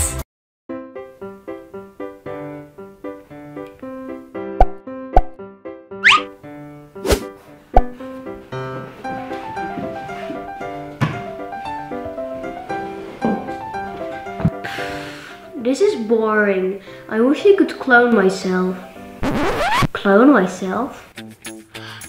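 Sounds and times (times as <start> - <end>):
light background music: 6.0 - 22.0.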